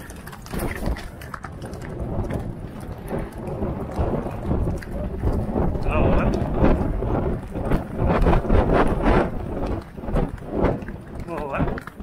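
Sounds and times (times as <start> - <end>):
horses galloping on soft ground: 0.0 - 12.0
wind rumble on microphone: 0.0 - 12.0.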